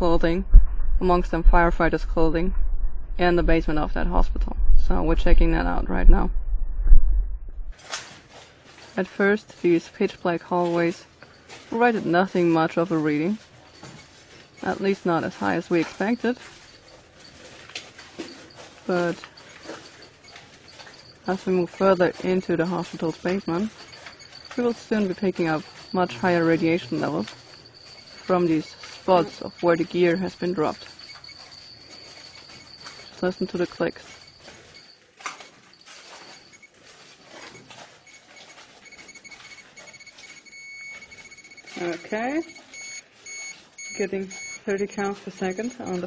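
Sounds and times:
radiation counter clicking: 9.2 - 46.0
high-pitched electronic beeping: 18.2 - 36.7, 37.4 - 46.0.

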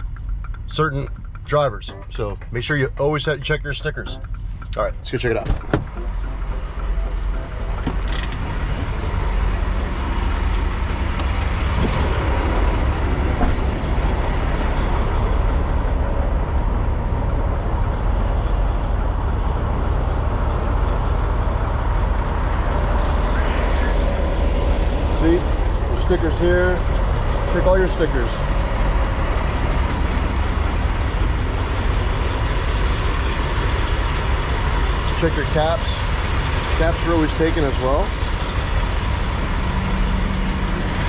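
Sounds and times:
sharp clicks and knocks: 0.0 - 2.8, 3.6 - 8.9, 10.4 - 14.8
diesel trucks idling: 0.0 - 41.0.

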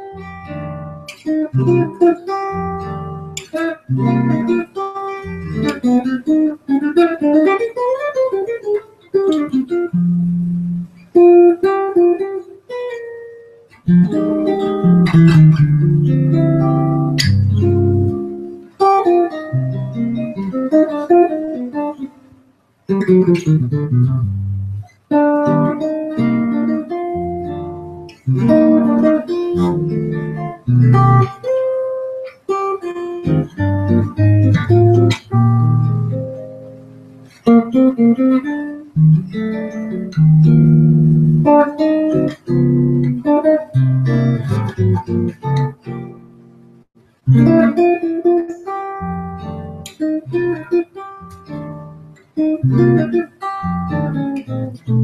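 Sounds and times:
solo jazz guitar: 0.0 - 55.0.

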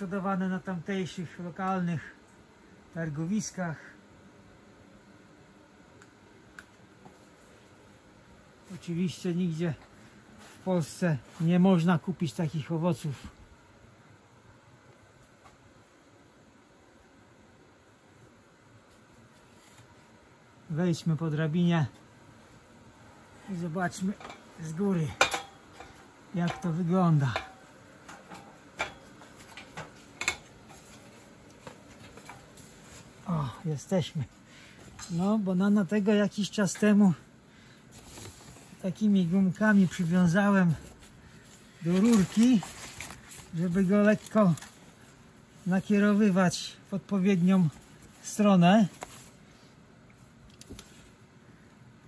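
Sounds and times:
clicks on metal ladder rungs: 24.0 - 32.5.

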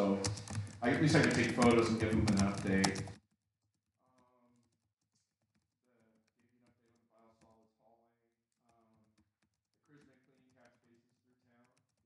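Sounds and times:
typing on computer keyboard: 0.0 - 7.8, 8.6 - 12.0.

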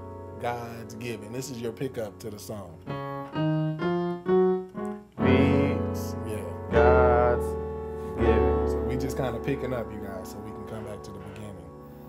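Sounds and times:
gospel piano playing: 0.0 - 12.0.

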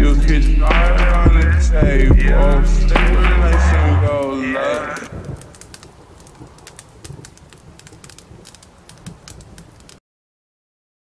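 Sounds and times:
low rumble: 0.0 - 5.6
faint crackle and clicks: 2.4 - 10.0.

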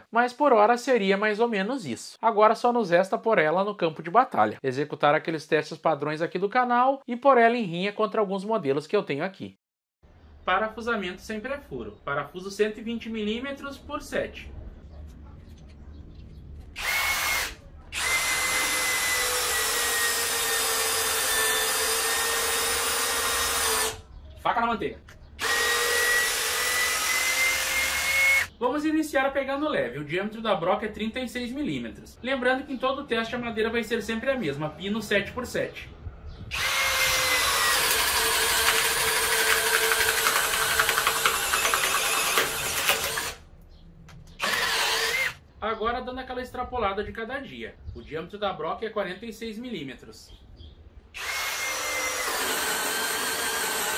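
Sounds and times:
drill driving screw into wood: 16.8 - 24.0, 25.4 - 28.5, 36.5 - 43.4, 44.4 - 45.4, 51.2 - 53.9
wood crackling being cut: 16.8 - 24.0, 25.4 - 28.5, 36.5 - 43.4, 44.4 - 45.4, 51.2 - 53.9.

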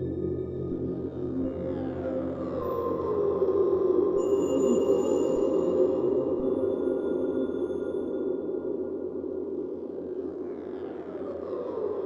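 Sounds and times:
low electronic drone: 0.0 - 4.2.

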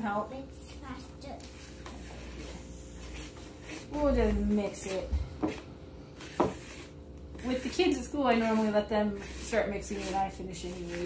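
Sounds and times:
wooden spoon stirring batter: 1.6 - 11.0.

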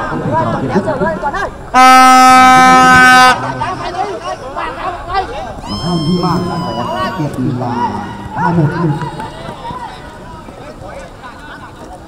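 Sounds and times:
distant voices calling out: 0.0 - 12.0
outdoor background noise: 0.0 - 12.0.

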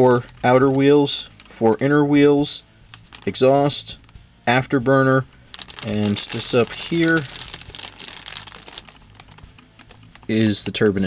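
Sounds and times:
plastic packaging crinkling: 2.9 - 3.5, 5.5 - 10.9.

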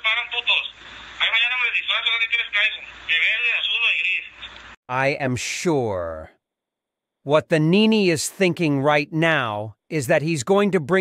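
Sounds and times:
man speaking over radio: 0.0 - 4.5.

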